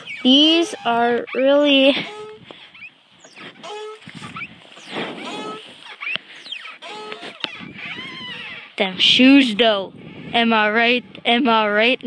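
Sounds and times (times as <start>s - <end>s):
exercise machine squeaks: 0.0s - 9.7s.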